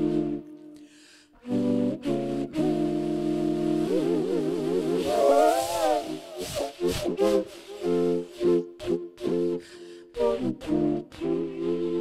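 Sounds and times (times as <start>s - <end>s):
stalk flute through effects: 0.0s - 12.0s.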